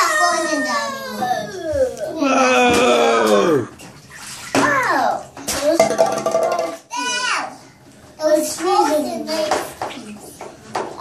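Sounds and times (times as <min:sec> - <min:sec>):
small children squealing and giggling: 0:00.0 - 0:03.7
water splashing in a sink: 0:02.7 - 0:06.9.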